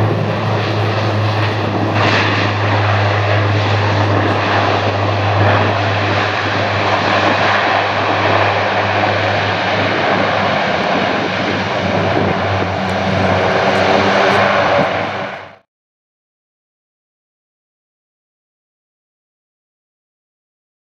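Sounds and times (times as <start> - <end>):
turboprop engine noise: 0.0 - 15.6
propeller drone: 0.0 - 15.7.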